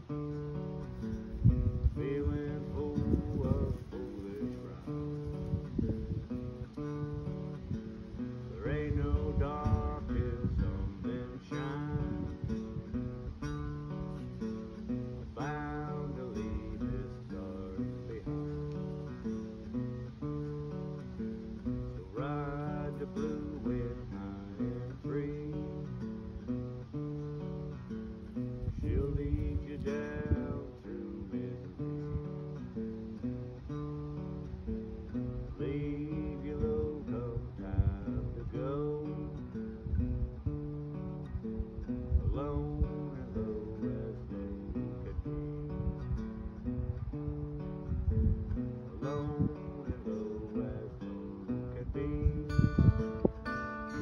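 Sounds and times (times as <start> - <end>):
acoustic guitar blues tune: 0.0 - 54.0.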